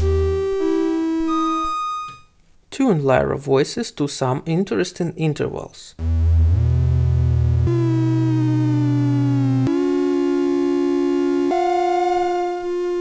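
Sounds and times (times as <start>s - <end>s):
synthesizer drone: 6.0s - 13.0s.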